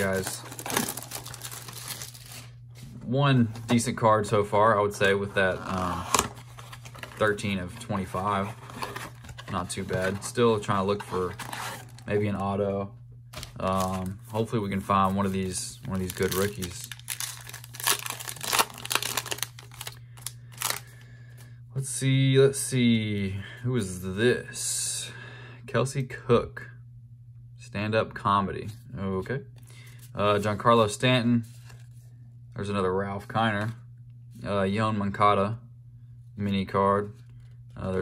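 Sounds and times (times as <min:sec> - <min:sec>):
plastic shrink wrap crackling: 0:00.0 - 0:02.5, 0:15.9 - 0:20.8.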